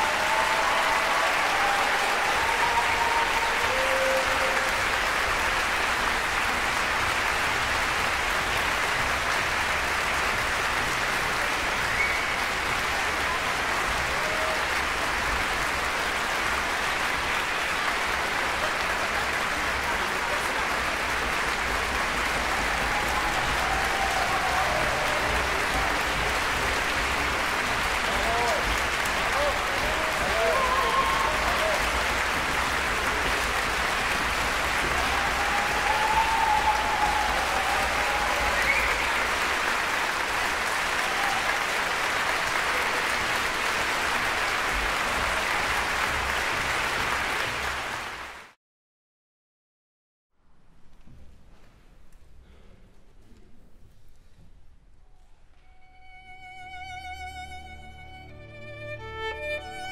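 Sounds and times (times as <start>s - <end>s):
audience applauding: 0.0s - 48.6s, 55.8s - 59.9s.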